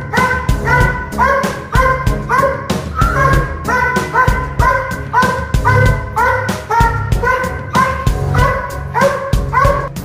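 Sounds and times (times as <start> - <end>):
background music: 0.0 - 10.0
dog barking: 0.0 - 10.0.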